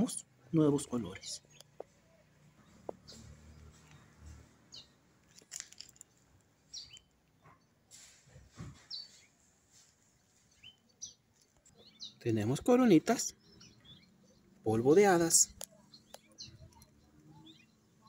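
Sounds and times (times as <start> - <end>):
faint bird chirps: 6.7 - 18.0.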